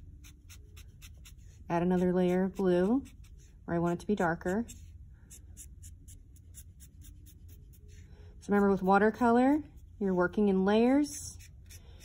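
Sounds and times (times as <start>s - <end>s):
marker scratching on paper: 0.2s - 8.0s.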